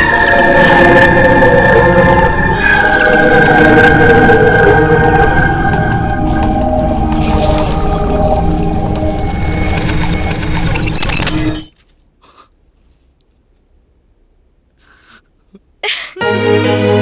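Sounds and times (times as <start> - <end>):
dense film background music: 0.0 - 11.7
faint high cricket chirps: 12.3 - 15.9.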